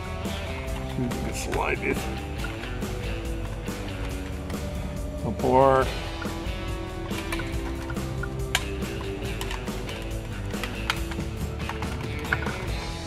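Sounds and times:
background music: 0.0 - 13.0
plastic pry tool clicks: 7.1 - 12.6.

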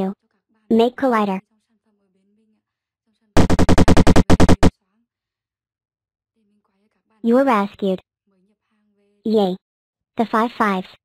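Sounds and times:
cartoon stuttering buzz: 3.4 - 4.7.

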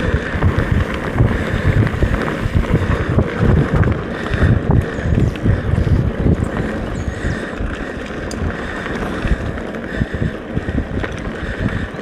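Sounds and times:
bike rattling: 0.0 - 12.0
tyre noise on dirt: 0.0 - 12.0
wind buffeting microphone: 0.0 - 12.0.

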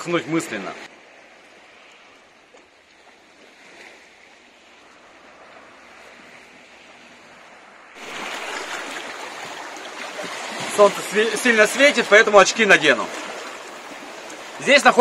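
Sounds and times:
sea waves lapping against rocks: 1.3 - 7.4, 8.0 - 15.0.

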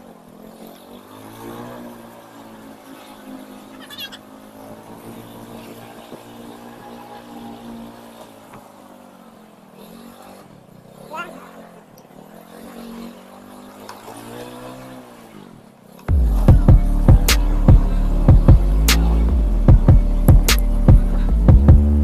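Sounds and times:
motorcycle engine: 0.0 - 22.0.

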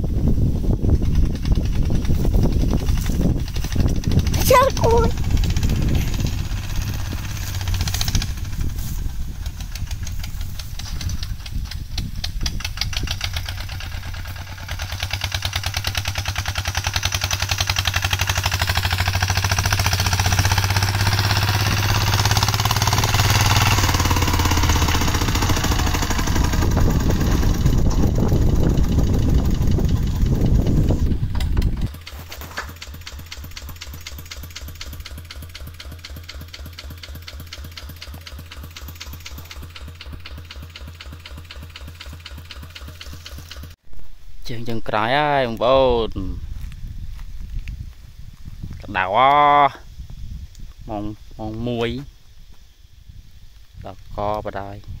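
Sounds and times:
diesel tractor engine knocking: 0.9 - 43.8.

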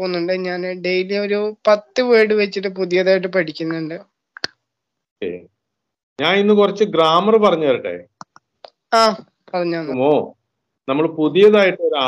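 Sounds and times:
man speaking: 5.2 - 5.5, 6.2 - 8.2, 9.9 - 12.0.

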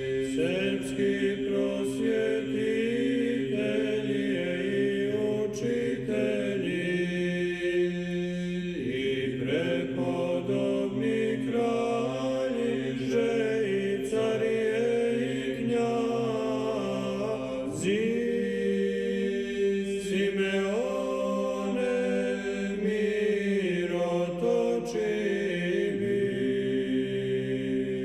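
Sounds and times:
choir chanting: 0.0 - 28.0.

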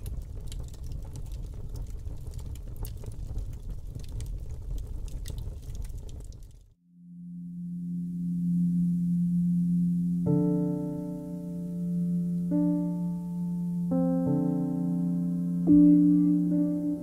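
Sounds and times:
low rumbling with crackles: 0.0 - 6.8
low synthesizer tone: 6.8 - 17.0.

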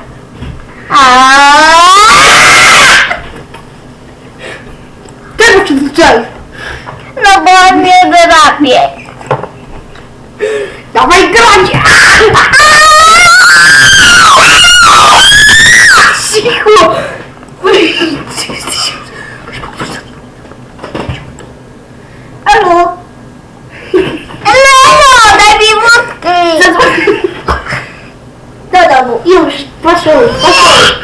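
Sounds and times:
child screaming: 0.9 - 3.2, 11.4 - 16.3, 24.5 - 26.1, 30.1 - 31.0.

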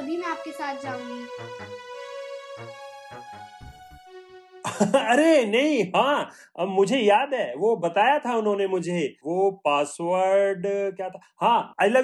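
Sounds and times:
soft background music: 0.0 - 5.4
man speaking: 4.7 - 12.0.

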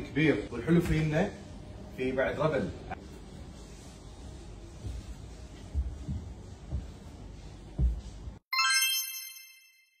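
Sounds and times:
bright logo chime ding: 8.5 - 10.0.

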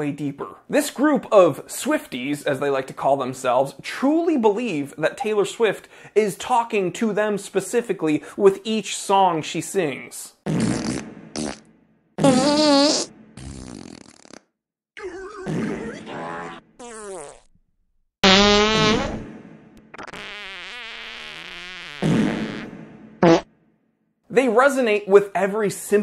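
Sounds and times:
fart sound effects: 10.4 - 17.6, 18.2 - 23.5.

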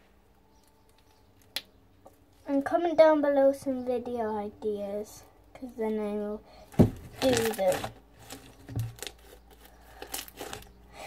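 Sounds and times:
slime crackling and squelching: 6.7 - 10.8.

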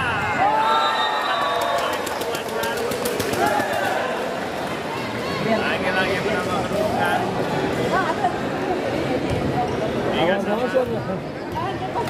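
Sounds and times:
crowd shouting and cheering: 0.0 - 7.8.

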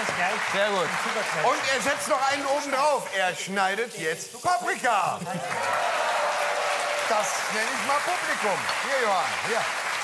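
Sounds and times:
studio audience applauding: 0.0 - 3.1, 5.2 - 10.0.

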